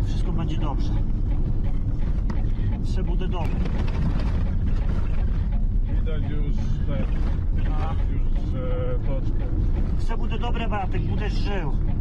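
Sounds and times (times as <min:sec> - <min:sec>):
vehicle low rumble from inside: 0:00.0 - 0:12.0.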